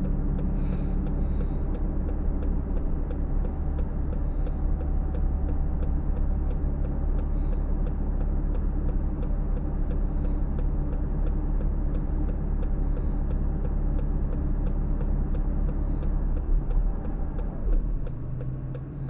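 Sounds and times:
car engine idling: 0.0 - 19.0
turn signal ticking: 0.0 - 19.0.

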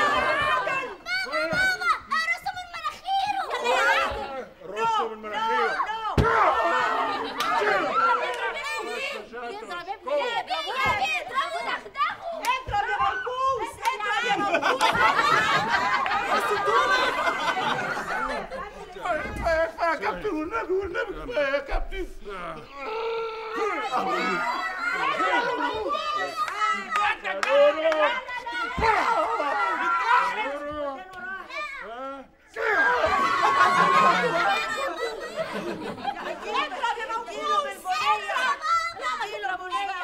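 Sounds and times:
excited cries and chatter: 0.0 - 21.5, 22.6 - 40.0
people talking at once: 0.0 - 40.0.

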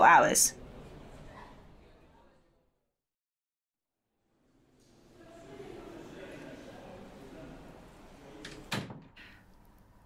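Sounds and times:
door closing thud: 8.4 - 9.2.

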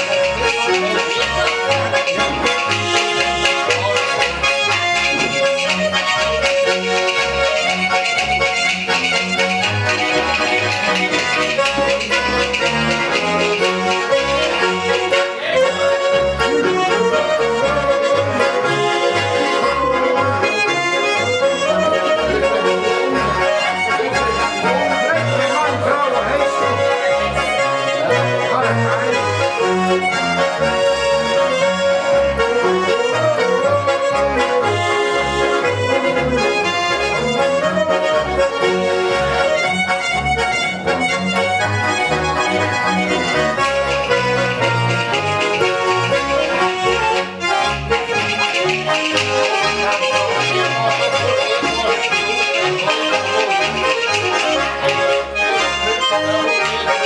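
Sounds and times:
button accordions playing: 0.0 - 57.0
plucked double bass: 0.0 - 57.0.

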